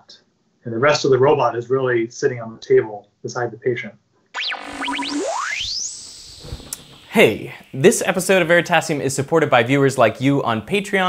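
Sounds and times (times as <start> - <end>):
electronic chirps: 4.4 - 9.0
rising electronic tone: 4.4 - 9.0.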